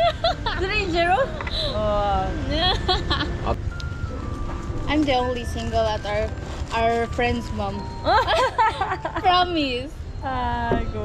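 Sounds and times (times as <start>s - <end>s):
woman laughing: 0.0s - 3.5s, 8.0s - 9.4s
steady low rumble: 0.0s - 11.0s.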